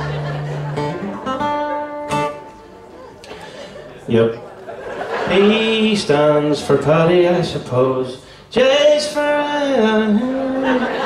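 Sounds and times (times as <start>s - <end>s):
acoustic guitars strumming chords: 0.0s - 3.8s, 5.1s - 11.0s.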